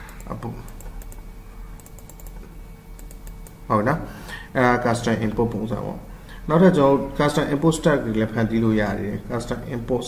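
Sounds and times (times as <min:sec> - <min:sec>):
computer clicks: 0:00.0 - 0:03.6
faint steady hum: 0:00.0 - 0:10.0.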